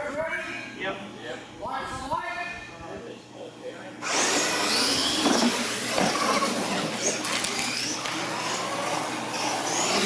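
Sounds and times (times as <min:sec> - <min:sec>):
toy truck motors whining: 0:04.0 - 0:10.0.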